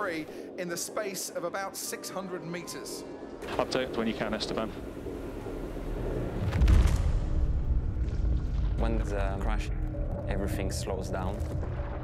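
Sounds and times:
low rumble: 2.9s - 12.0s
heavy crash boom with crackle: 6.4s - 9.3s.

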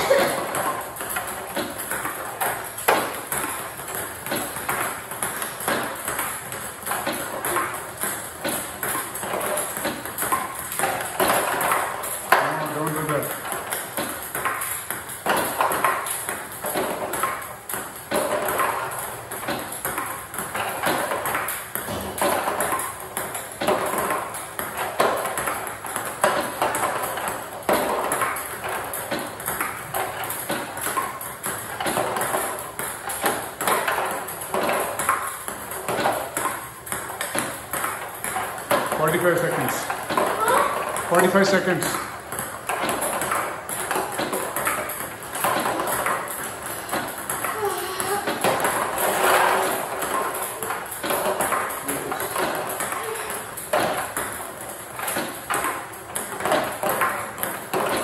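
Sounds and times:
ping-pong ball hitting paddle and table: 0.0s - 58.0s.

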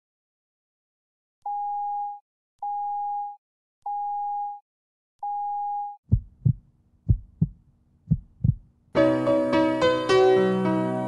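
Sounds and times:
telephone tone beeping: 1.5s - 4.6s, 5.2s - 6.0s
heartbeat thumps: 6.1s - 8.7s.

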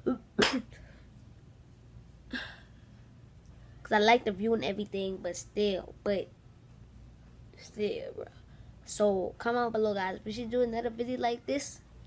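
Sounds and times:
person sneezing: 0.0s - 0.8s.

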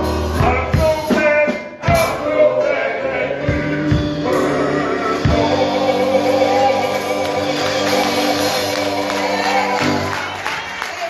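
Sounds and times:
group singing gospel: 0.0s - 10.4s
instrumental accompaniment: 0.0s - 10.8s.

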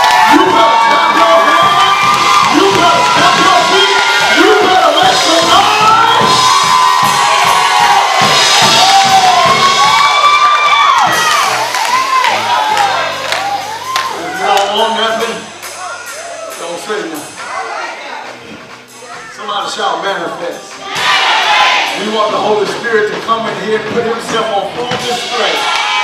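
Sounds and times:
congregation shouting and cheering: 0.0s - 23.2s, 23.8s - 26.0s.

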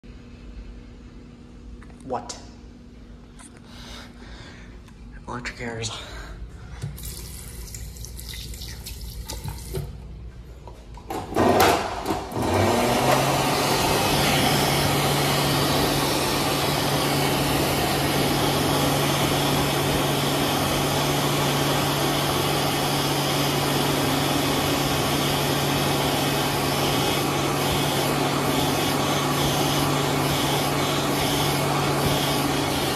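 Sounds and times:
hand dryer blowing air: 11.0s - 32.9s.

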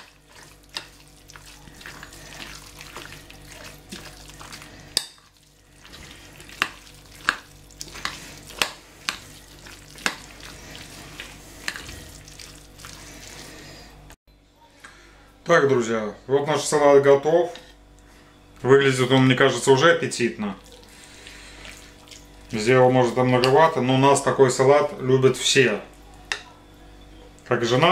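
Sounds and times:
spoon stirring wet salad: 0.0s - 14.1s, 20.5s - 26.8s.

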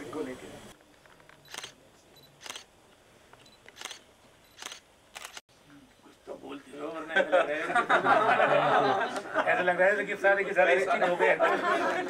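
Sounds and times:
camera shutters clicking: 1.0s - 1.8s, 2.4s - 2.7s, 3.4s - 5.4s.

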